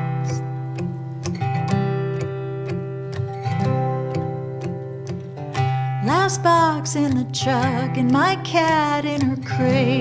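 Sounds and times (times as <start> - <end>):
acoustic guitars playing folk: 0.0 - 10.0
woman singing: 5.9 - 10.0.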